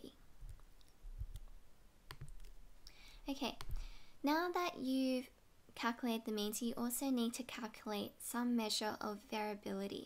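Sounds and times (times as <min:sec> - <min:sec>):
computer keys clicking: 0:00.4 - 0:02.6.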